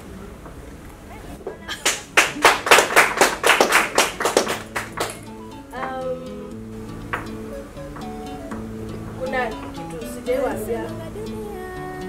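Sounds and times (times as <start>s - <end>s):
hands clapping rhythmically: 1.7s - 6.0s, 7.1s - 9.9s
plucked string music: 4.4s - 12.0s.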